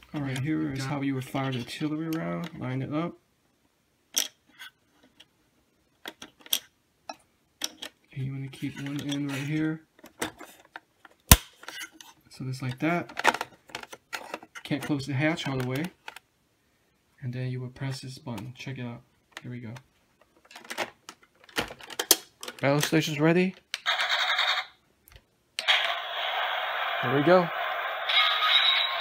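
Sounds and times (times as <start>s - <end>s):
sharp loud plastic click: 11.3s - 11.6s
electronic toy battle sound effect: 23.9s - 24.7s, 25.6s - 29.0s.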